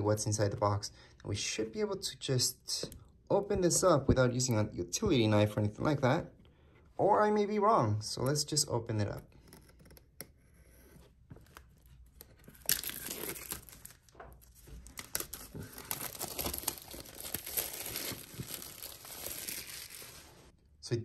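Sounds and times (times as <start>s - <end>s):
plastic shrink-wrap tearing: 12.4s - 20.5s.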